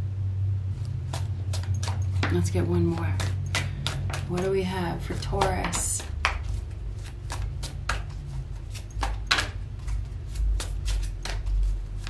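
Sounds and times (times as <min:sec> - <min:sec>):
low hum: 0:00.0 - 0:12.0
cards being shuffled: 0:00.8 - 0:02.3, 0:03.0 - 0:12.0.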